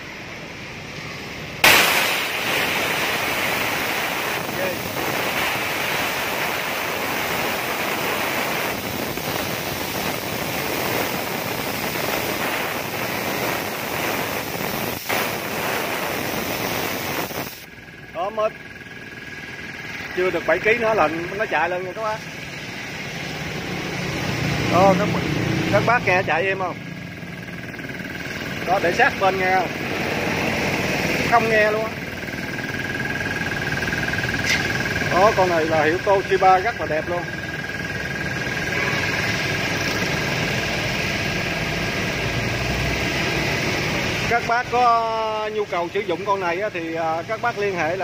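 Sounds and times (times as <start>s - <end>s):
air compressor humming: 0.0s - 48.0s.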